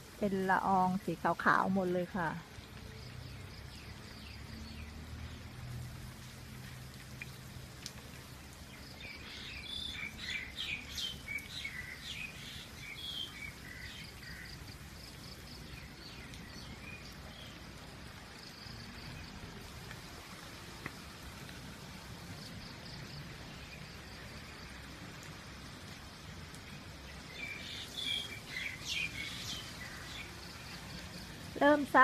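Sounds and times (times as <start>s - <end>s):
steady rain falling: 0.0s - 32.0s
small birds chirping: 8.2s - 17.6s, 26.7s - 32.0s.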